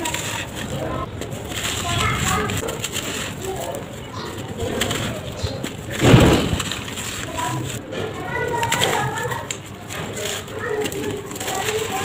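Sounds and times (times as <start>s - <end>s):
dry cement clumps crumbling: 0.0s - 12.0s.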